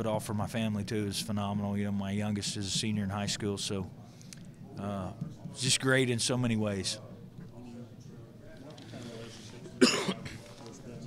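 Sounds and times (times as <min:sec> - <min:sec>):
man coughing: 0:09.8 - 0:10.4.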